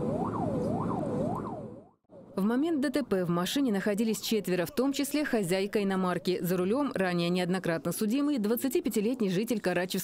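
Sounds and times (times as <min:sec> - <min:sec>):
car engine and road noise: 0:00.0 - 0:01.9
police siren wailing: 0:00.0 - 0:02.0.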